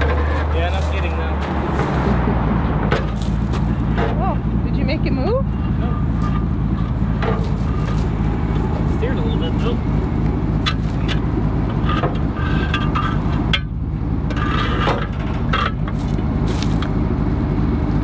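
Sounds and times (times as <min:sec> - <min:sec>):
truck engine idling: 0:00.0 - 0:18.0
metallic knocks and clanks: 0:02.8 - 0:04.4, 0:05.3 - 0:09.9, 0:10.5 - 0:16.2.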